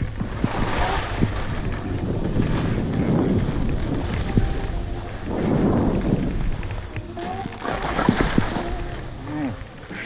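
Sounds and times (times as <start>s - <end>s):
snow sliding hiss: 0.0s - 6.9s
wind buffeting microphone: 0.0s - 9.9s.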